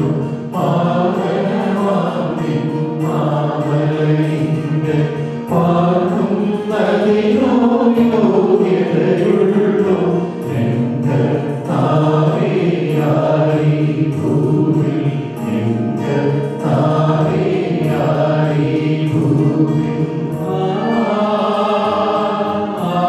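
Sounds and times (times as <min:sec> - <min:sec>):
voices singing liturgical chant: 0:00.0 - 0:23.0.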